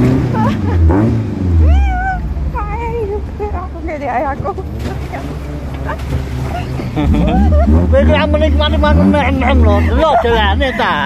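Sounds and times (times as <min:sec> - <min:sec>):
jeep engine rumbling: 0:00.0 - 0:11.0.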